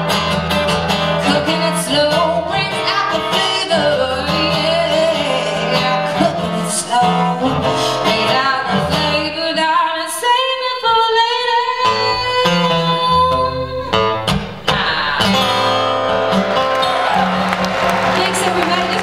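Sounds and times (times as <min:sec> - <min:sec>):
acoustic guitar: 0:00.0 - 0:19.0
woman singing: 0:01.2 - 0:14.0.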